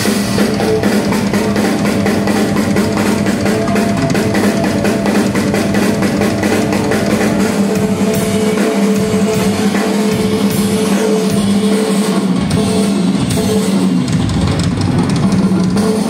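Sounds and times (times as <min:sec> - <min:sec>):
rock drum solo: 0:00.0 - 0:16.0.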